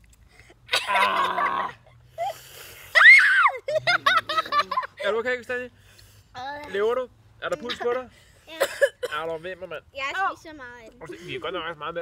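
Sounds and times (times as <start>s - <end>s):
children screaming: 2.9s - 3.7s.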